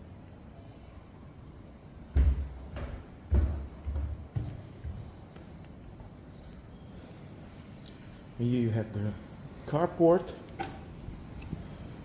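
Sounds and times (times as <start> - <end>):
footsteps: 2.0 - 6.4.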